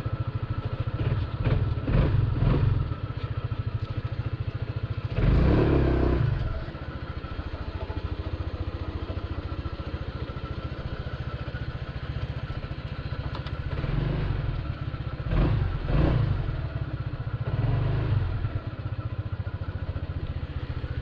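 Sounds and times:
scooter engine idling and revving: 0.0s - 21.0s.

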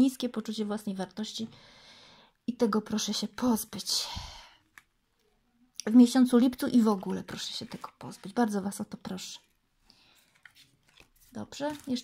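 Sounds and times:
woman speaking: 0.0s - 1.5s, 2.5s - 4.4s, 5.8s - 9.5s, 11.4s - 12.0s.

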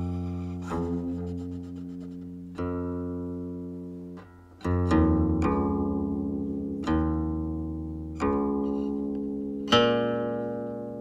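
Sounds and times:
plucked zither note: 0.0s - 3.4s.

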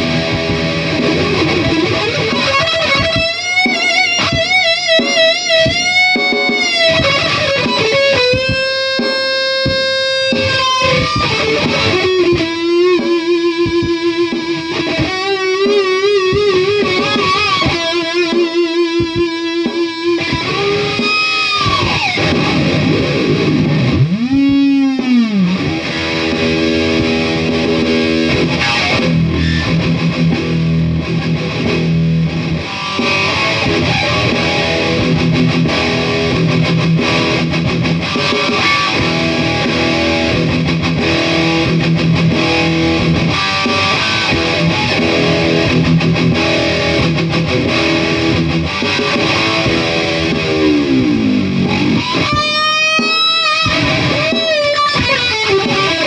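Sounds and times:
distorted electric guitar: 0.0s - 56.0s.

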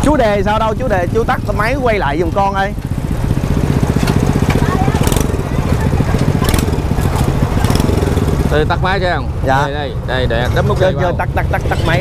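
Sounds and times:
small engine idling: 0.0s - 12.0s
sharp clicks and rattles: 0.6s - 8.7s.

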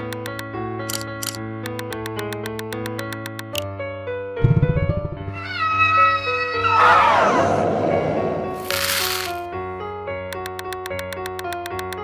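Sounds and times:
background music: 0.0s - 12.0s
monster-like screeching cry: 5.4s - 7.8s.

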